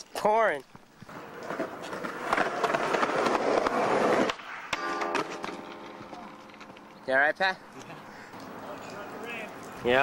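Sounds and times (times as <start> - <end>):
skateboard scraping metal rail: 1.1 - 7.0
skateboard landing clack: 2.0 - 6.9.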